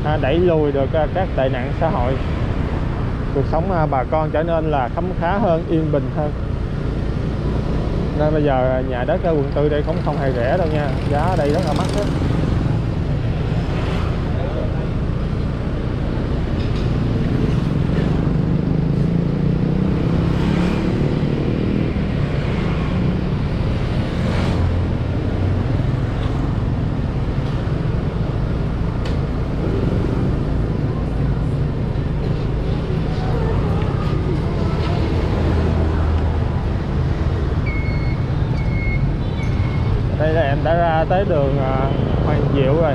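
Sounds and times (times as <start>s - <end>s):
passing scooters and traffic: 0.0s - 42.9s.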